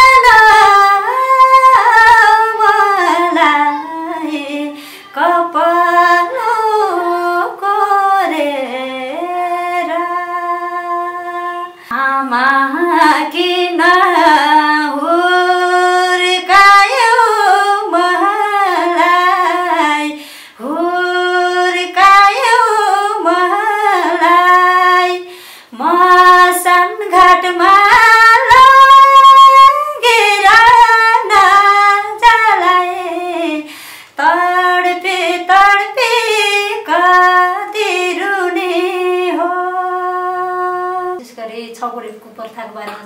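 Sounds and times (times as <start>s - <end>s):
woman singing unaccompanied: 0.0s - 43.0s.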